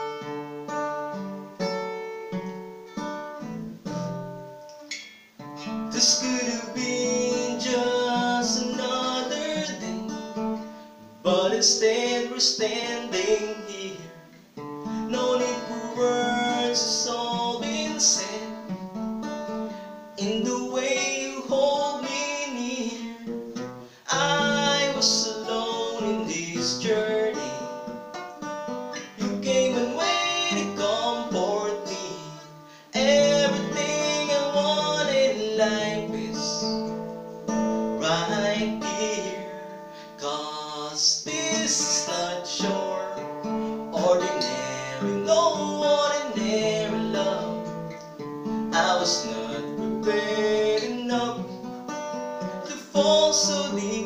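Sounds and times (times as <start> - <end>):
acoustic guitar strumming: 0.0 - 54.0
man singing a slow ballad: 5.6 - 10.5, 11.2 - 18.8, 20.1 - 27.9, 29.0 - 37.0, 37.8 - 51.7, 52.6 - 54.0.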